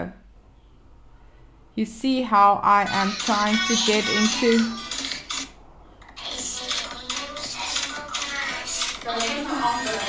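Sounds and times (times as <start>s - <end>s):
music from phone video: 2.9s - 10.0s.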